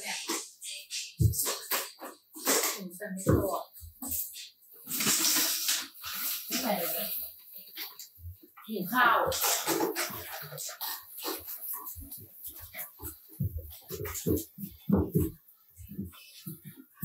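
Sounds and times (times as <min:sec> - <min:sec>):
woman talking: 0:00.0 - 0:00.6, 0:02.5 - 0:04.3, 0:06.5 - 0:07.2, 0:08.6 - 0:09.6
hiss: 0:04.9 - 0:07.3.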